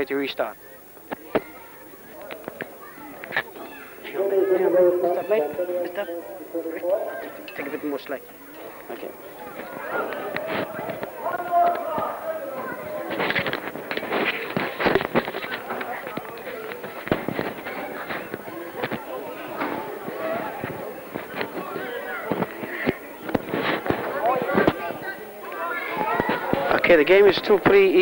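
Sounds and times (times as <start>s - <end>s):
indistinct voices: 0.0s - 28.0s
crackling and clicking noise: 0.8s - 28.0s.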